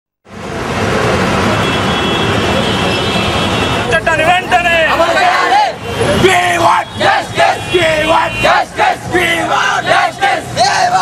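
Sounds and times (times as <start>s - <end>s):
loud street traffic: 0.2s - 11.0s.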